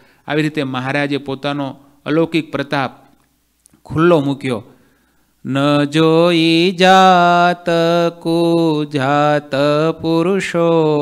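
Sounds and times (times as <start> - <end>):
man singing devotional song: 5.4 - 11.0.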